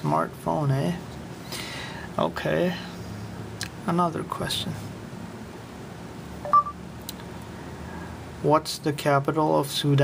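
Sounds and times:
faint room hum: 0:00.0 - 0:10.0
short electronic beep: 0:06.4 - 0:06.8.

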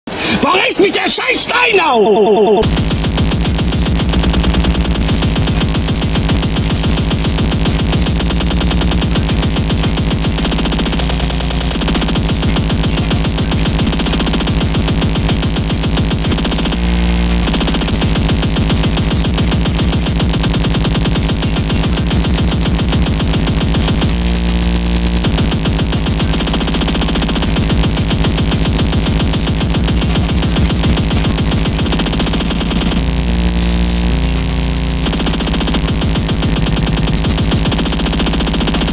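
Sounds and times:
fast dense electronic music: 0:02.6 - 0:38.9.

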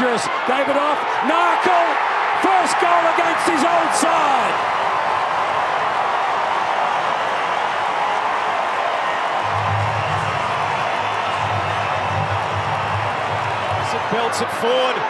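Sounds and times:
stadium crowd cheering: 0:00.0 - 0:15.0.

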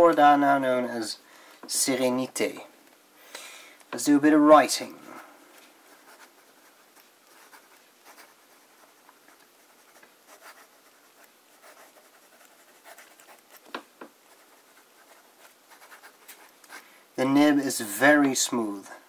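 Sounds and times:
pen scratching on paper: 0:05.9 - 0:16.8.

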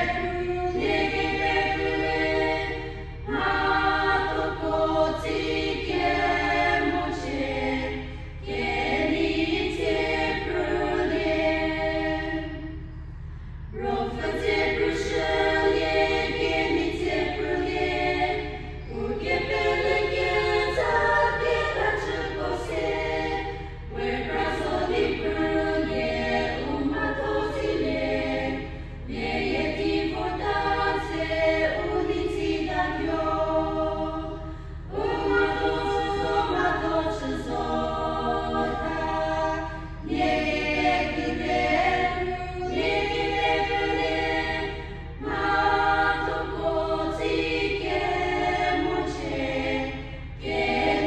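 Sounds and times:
women's choir singing a hymn: 0:00.0 - 0:51.0.

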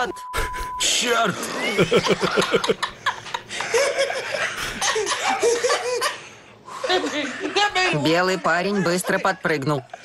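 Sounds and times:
hearty laughter: 0:01.4 - 0:07.9.

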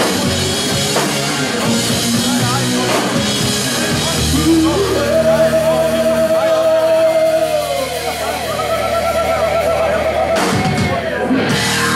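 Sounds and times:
live rock band held note: 0:00.0 - 0:11.9.

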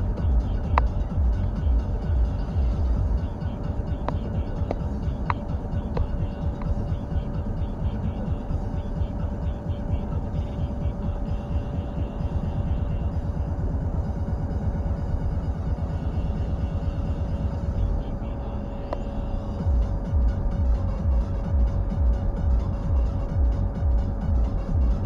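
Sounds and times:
car road and engine rumble: 0:00.0 - 0:25.0
thin steady whine: 0:00.0 - 0:25.0.

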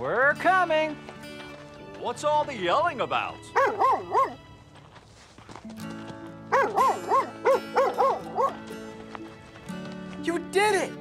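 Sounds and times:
cartoon dog barking: 0:03.6 - 0:04.4, 0:06.5 - 0:08.6.

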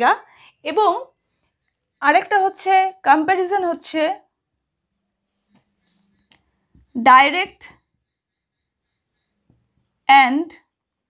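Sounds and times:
marker writing on whiteboard: 0:02.2 - 0:11.0.

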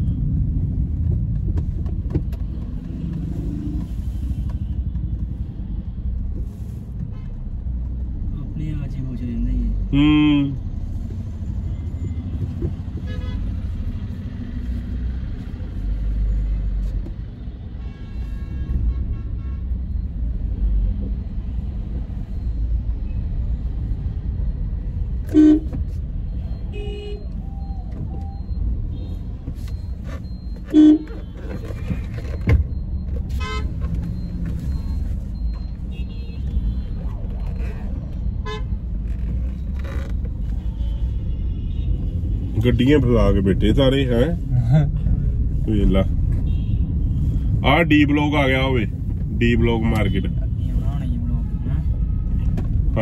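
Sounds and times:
car cabin road rumble: 0:00.0 - 0:17.8, 0:18.5 - 0:53.0
car horn honks: 0:13.0 - 0:13.5, 0:25.2 - 0:25.9, 0:26.7 - 0:27.3, 0:30.6 - 0:32.4, 0:33.3 - 0:33.9, 0:35.9 - 0:37.0, 0:38.4 - 0:38.8, 0:46.3 - 0:46.8.

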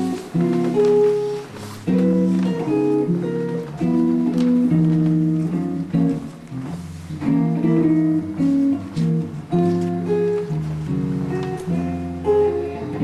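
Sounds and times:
guitar playing chords: 0:00.0 - 0:13.0.

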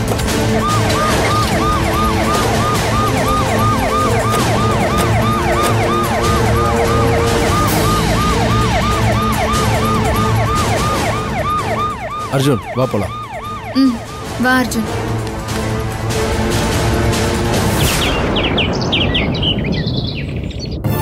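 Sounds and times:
emergency siren yelping: 0:00.3 - 0:15.0.

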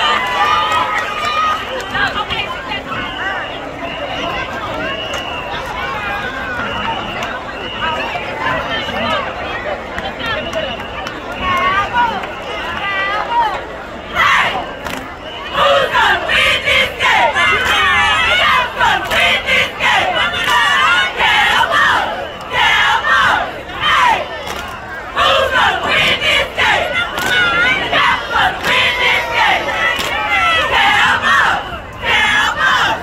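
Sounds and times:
cheerleaders shouting a cheer: 0:11.4 - 0:33.0.

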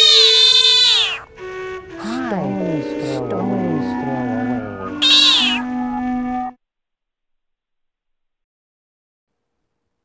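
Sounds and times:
music with held note: 0:01.4 - 0:06.6
high-pitched cry sliding down: 0:03.1 - 0:05.6.

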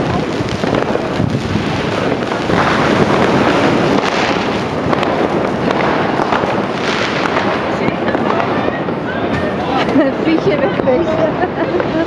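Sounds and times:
firecrackers crackling: 0:00.0 - 0:12.0.

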